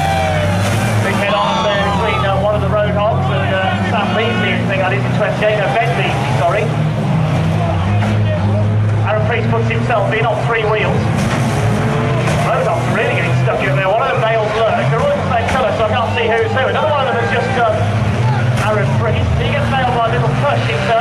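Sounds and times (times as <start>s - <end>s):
racing car engines revving: 0.0s - 21.0s
commentator over public address: 1.0s - 11.2s, 12.3s - 21.0s.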